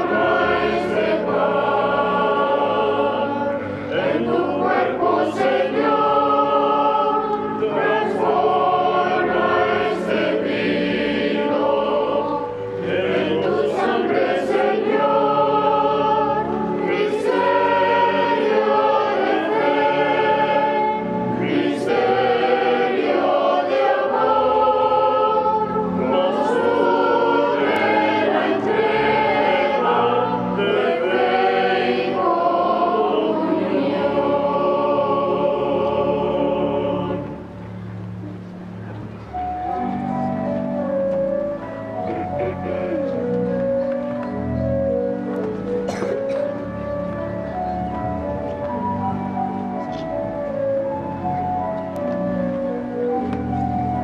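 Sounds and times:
choir singing a hymn: 0.0 - 38.2, 39.3 - 54.0
pipe organ: 0.0 - 54.0.

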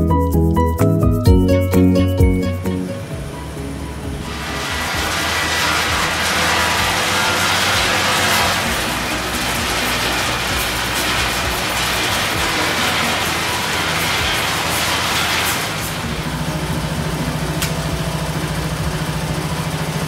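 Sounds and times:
peeling machine humming: 1.3 - 20.0.

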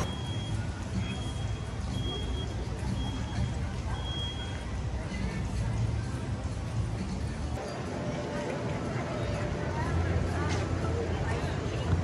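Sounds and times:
reversing alarm beeping: 0.0 - 4.6.

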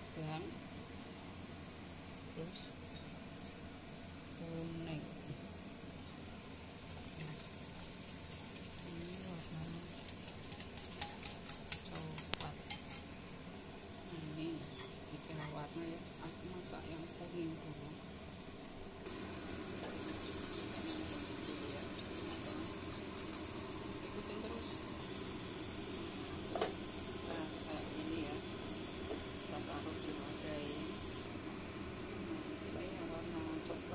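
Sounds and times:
utensil scraping bowl: 6.9 - 13.0, 19.8 - 23.4.

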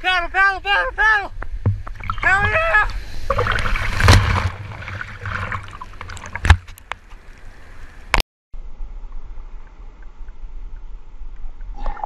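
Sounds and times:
water rushing and splashing: 1.4 - 8.2
sharp splash or knock: 3.3 - 6.7.

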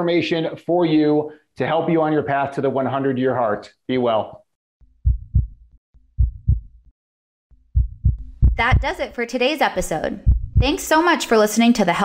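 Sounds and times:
heartbeat thumps: 4.9 - 6.9, 7.6 - 9.2, 9.8 - 10.9.

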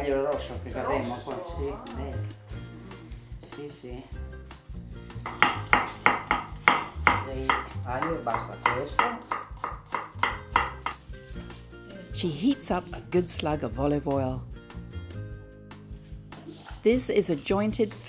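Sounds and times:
knife chopping on wooden board: 5.2 - 11.1.

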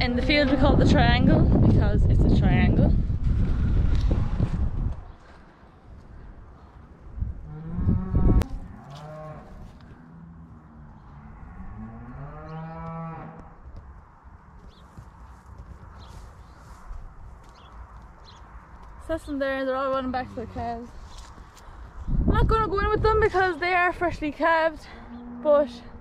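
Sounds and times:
cows mooing: 7.4 - 13.6.

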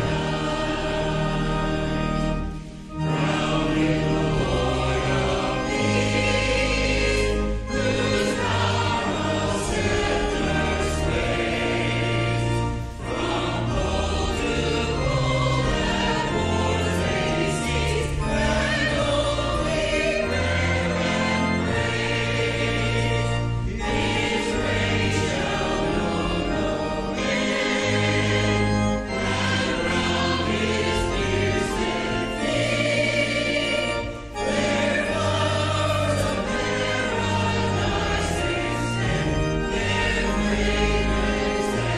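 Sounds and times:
church choir singing: 0.0 - 41.9
sustained low accompaniment: 0.0 - 41.9.

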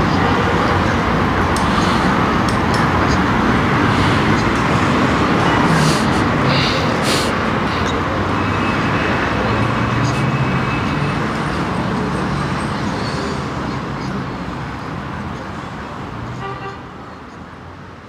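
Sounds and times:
city noise: 0.0 - 18.0
faint voices of passers-by: 0.0 - 18.0.

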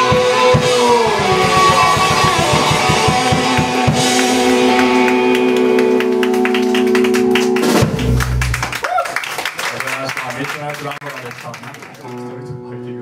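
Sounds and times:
bass and drum hit: 0.0 - 5.2, 7.6 - 8.6
rock band sustained chord: 0.0 - 8.7.

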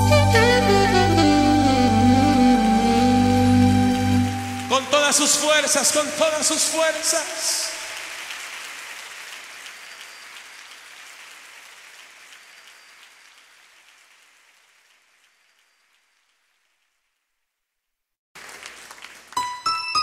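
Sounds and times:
audience applause: 4.3 - 16.6, 18.4 - 19.7.

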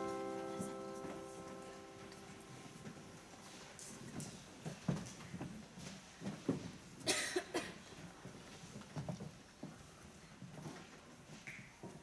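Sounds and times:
person coughing: 7.1 - 7.8.

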